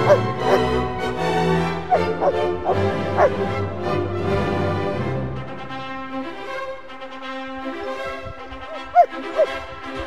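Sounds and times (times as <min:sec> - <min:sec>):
dog barking: 0:00.0 - 0:00.6, 0:01.9 - 0:03.4, 0:08.7 - 0:09.5
background music: 0:00.0 - 0:10.0.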